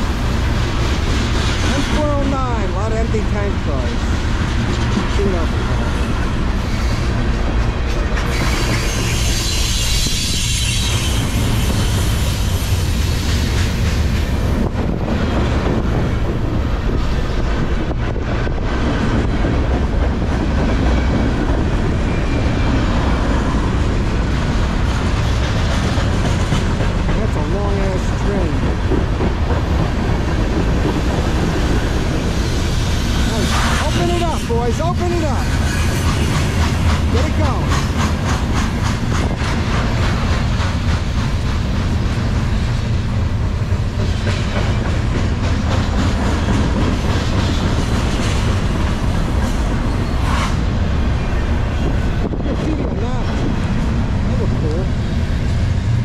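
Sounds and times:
freight train rolling past: 0:00.0 - 0:56.0.

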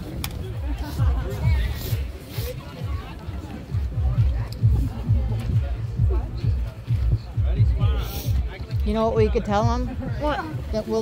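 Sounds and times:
background music with low beat: 0:00.0 - 0:11.0
crowd chatter: 0:00.0 - 0:11.0.

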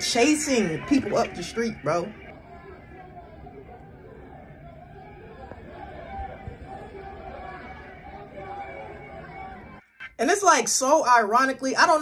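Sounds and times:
distant voices and chatter: 0:00.0 - 0:09.9.

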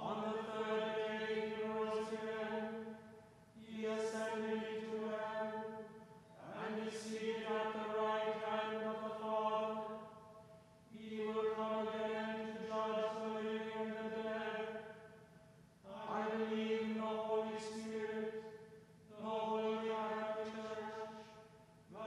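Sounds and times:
man chanting on one note: 0:19.1 - 0:22.0.

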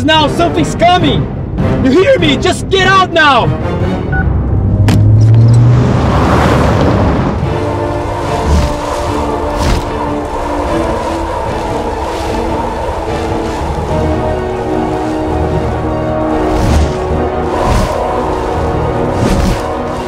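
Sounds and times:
sustained ominous chords: 0:03.5 - 0:20.0.

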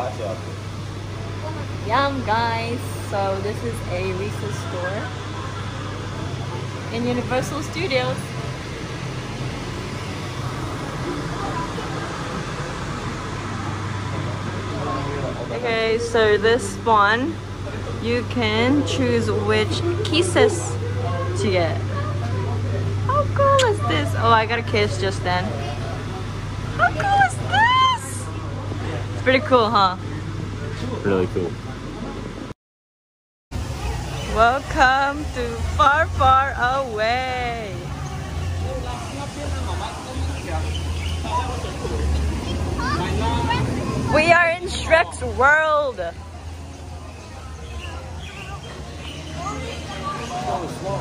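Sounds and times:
low indoor room hum: 0:00.0 - 0:32.5, 0:33.6 - 0:51.0.

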